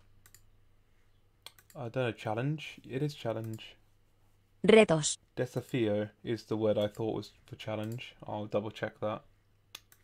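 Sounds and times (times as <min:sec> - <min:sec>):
computer mouse clicks: 0:00.2 - 0:00.5, 0:01.4 - 0:01.8, 0:09.7 - 0:10.0.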